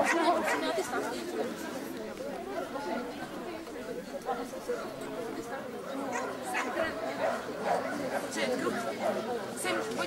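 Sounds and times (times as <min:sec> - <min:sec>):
chatter of spectators: 0:00.0 - 0:10.0.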